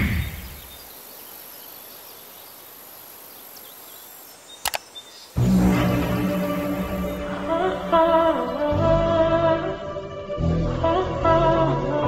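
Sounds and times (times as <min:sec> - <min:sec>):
faint ambience: 0:00.0 - 0:10.4
sharp click: 0:04.6 - 0:04.9
music: 0:05.4 - 0:12.0.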